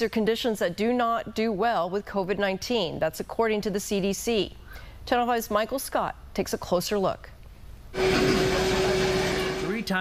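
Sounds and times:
dialysis machine whirring: 0:08.0 - 0:10.0.

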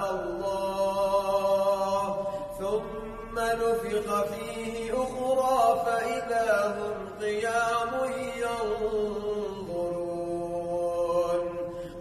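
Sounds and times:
man chanting recitation: 0:00.0 - 0:12.0.

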